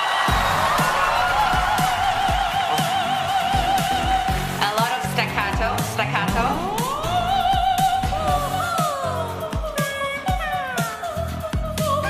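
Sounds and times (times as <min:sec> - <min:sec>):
electronic dance beat: 0:00.0 - 0:11.2.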